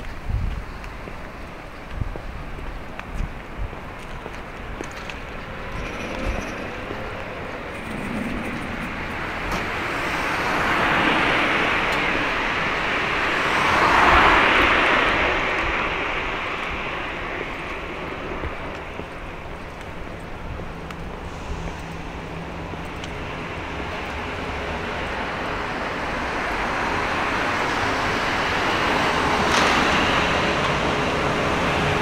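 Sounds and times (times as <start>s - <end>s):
cars passing close by: 5.2s - 32.0s.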